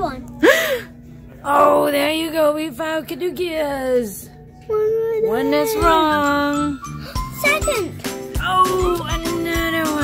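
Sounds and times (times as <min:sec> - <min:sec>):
child speaking: 0:04.7 - 0:06.1, 0:07.4 - 0:07.9.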